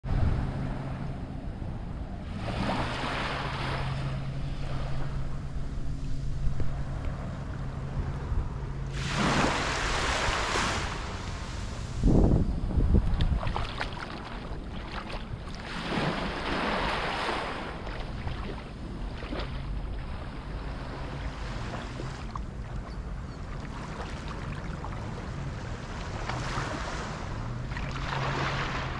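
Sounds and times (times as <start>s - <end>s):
steady low hum: 0.0s - 28.9s
wind buffeting microphone: 0.0s - 28.9s
small waves washing onto sand: 2.2s - 7.8s, 8.8s - 12.2s, 12.9s - 28.9s.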